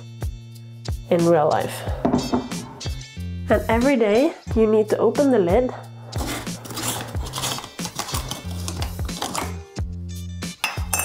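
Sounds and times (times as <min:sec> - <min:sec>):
background music: 0:00.0 - 0:11.0
jar lid clicking and scraping: 0:06.2 - 0:09.6.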